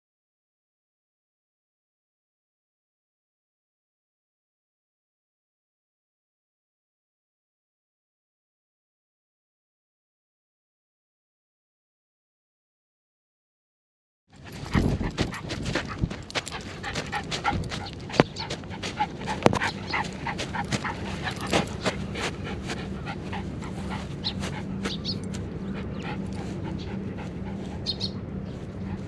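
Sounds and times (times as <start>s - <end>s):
dog panting: 14.4s - 29.0s.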